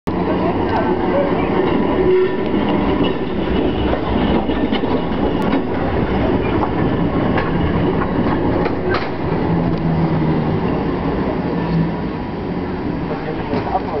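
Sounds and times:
tram wheels rumbling on rails: 0:00.1 - 0:14.0.

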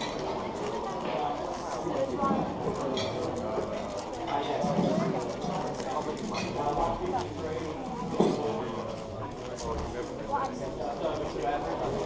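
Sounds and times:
voices talking in background: 0:00.0 - 0:12.0.

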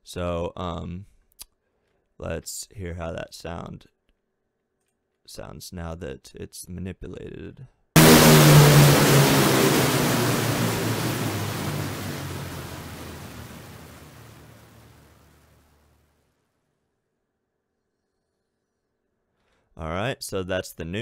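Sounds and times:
loud distorted hit: 0:08.0 - 0:15.6
low rumbling drone: 0:08.0 - 0:15.7.

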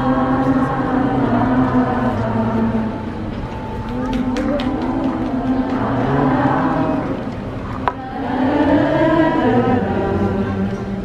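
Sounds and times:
crowd singing held notes: 0:00.0 - 0:11.0.

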